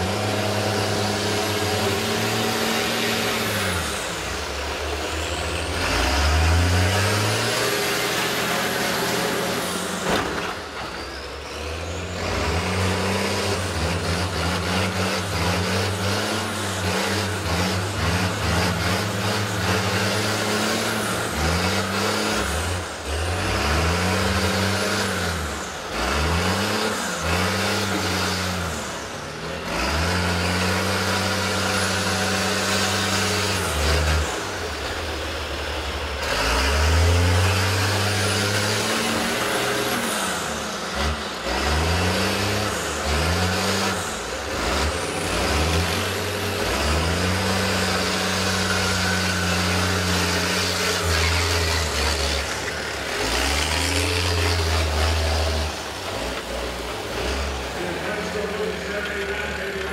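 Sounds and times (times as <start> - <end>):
bus engines revving: 0.0 - 59.9.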